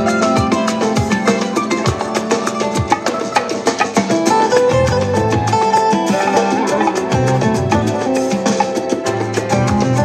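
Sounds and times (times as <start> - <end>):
hand percussion pattern: 0.0 - 10.0
latin jazz instrumental: 0.0 - 10.0
plucked guitar melody: 0.0 - 10.0.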